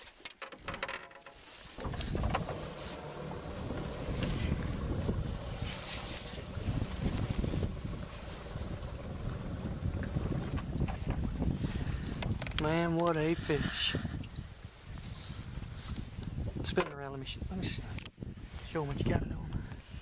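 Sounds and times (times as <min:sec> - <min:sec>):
water splashing: 0:01.6 - 0:13.5
wind rumble on microphone: 0:01.7 - 0:20.0.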